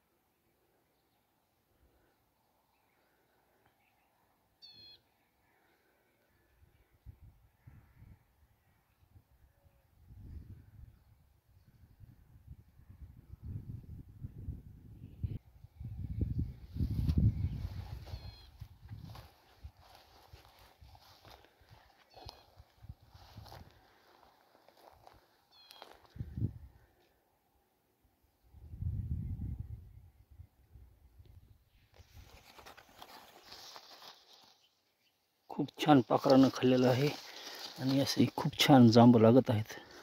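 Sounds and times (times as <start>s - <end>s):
bird chirps: 3.7s - 5.2s, 17.5s - 18.6s, 25.5s - 26.0s
footsteps through dry grass: 16.6s - 26.4s, 32.0s - 34.9s, 35.7s - 40.0s.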